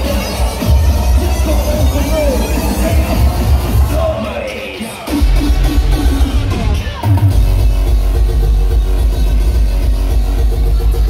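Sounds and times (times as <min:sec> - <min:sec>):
hardcore electronic dance music: 0:00.0 - 0:11.0.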